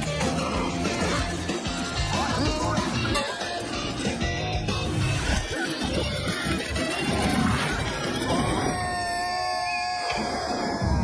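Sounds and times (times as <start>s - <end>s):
cartoon character screaming: 7.0s - 11.0s.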